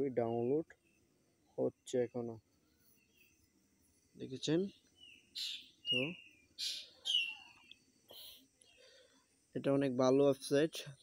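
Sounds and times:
bird chirping: 0.0s - 3.6s, 4.2s - 9.1s.

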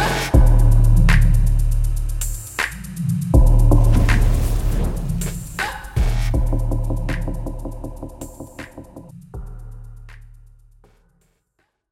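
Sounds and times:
whooshing sweep: 3.7s - 7.3s.

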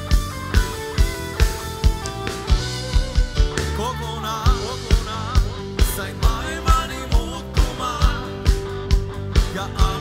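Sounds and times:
electric guitar: 0.0s - 10.0s
live band playing pop: 0.0s - 10.0s
person singing: 3.6s - 8.8s, 9.4s - 10.0s.

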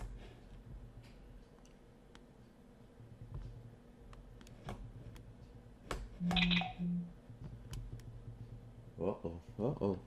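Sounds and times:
phone buzzing: 6.2s - 7.1s.

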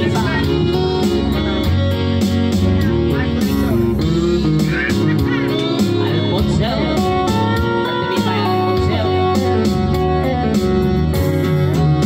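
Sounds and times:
slow country instrumental guitar: 0.0s - 12.0s.

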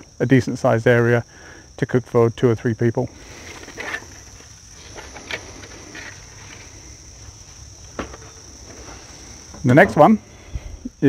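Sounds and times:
crickets trilling: 0.0s - 11.0s
faint clicks and rustles: 3.3s - 9.7s.

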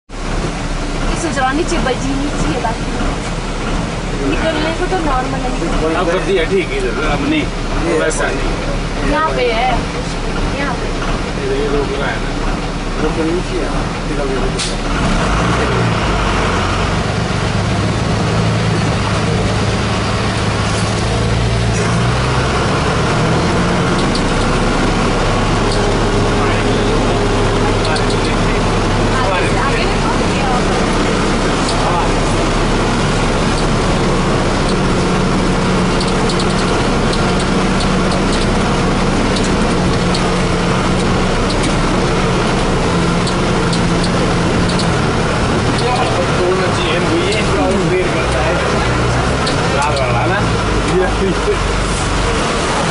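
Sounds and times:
heavy vehicle engine from cab: 0.1s - 52.9s
rattles and clicks: 23.4s - 24.6s, 33.2s - 46.3s.

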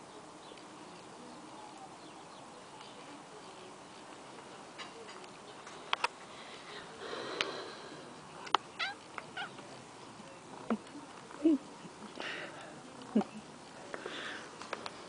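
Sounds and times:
cat meowing: 8.8s - 9.6s.

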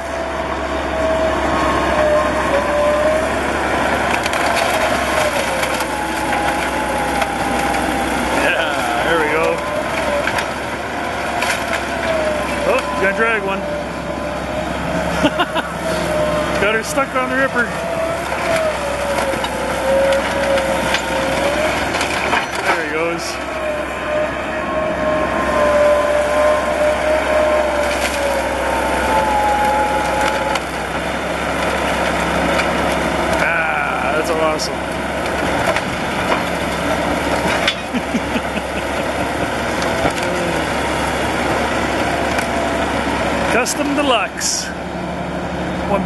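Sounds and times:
high squeal: 0.0s - 32.5s
bulldozer engine under load: 0.0s - 46.0s
clanking tracks: 0.0s - 46.0s.

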